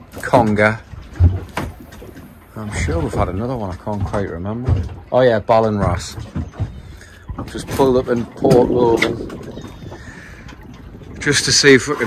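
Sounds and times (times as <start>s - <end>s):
water rushing around boat: 0.0s - 12.0s.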